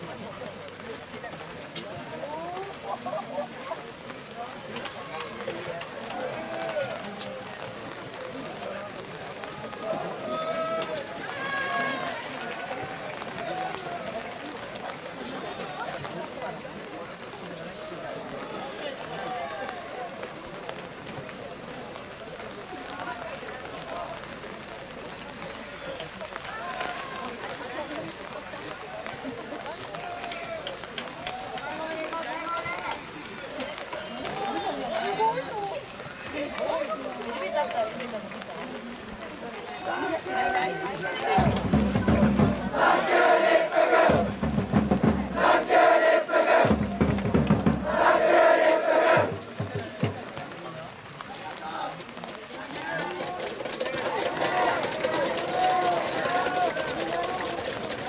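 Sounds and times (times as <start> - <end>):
voices calling out and talking: 0.0 - 58.0
young men shouting together: 42.6 - 44.4, 45.4 - 46.7, 47.8 - 49.3.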